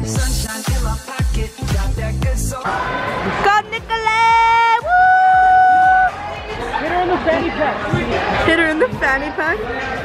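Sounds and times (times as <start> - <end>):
background music: 0.0 - 10.0
crowd noise and voices: 2.4 - 10.0.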